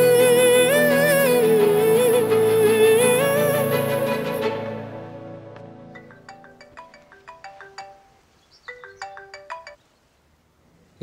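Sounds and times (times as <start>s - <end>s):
marimba phone ringtone: 5.9s - 9.8s.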